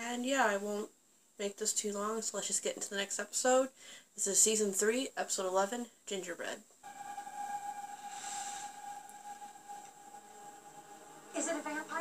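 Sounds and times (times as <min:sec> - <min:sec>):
steady held tone: 0:06.8 - 0:12.0.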